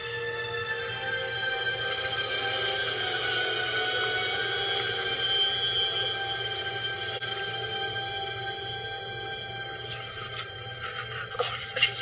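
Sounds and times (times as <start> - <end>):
suspenseful horror film score: 0.0 - 12.0.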